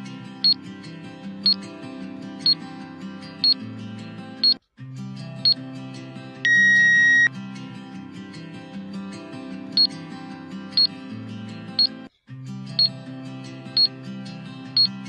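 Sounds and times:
background music: 0.0 - 15.0
loud electronic beep: 6.5 - 7.3.

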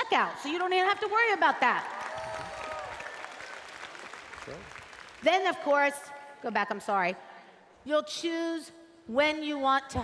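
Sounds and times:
audience applause: 1.8 - 5.2.

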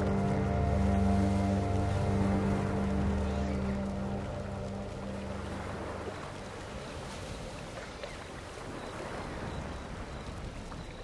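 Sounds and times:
soft music pad: 0.0 - 7.3
rushing lapping water: 0.0 - 11.0.

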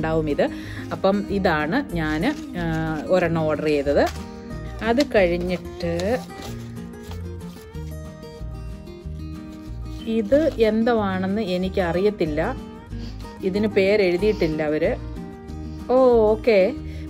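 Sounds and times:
woman speaking: 0.0 - 4.2, 4.8 - 6.4, 10.0 - 12.6, 13.4 - 15.1, 15.9 - 16.8.

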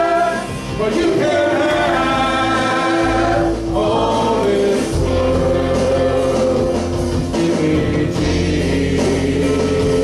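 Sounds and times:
group singing gospel: 0.0 - 10.0
instrumental backing: 0.0 - 10.0.

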